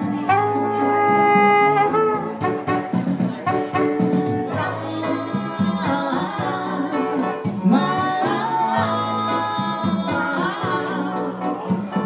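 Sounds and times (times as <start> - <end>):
person singing with band: 3.3 - 12.0.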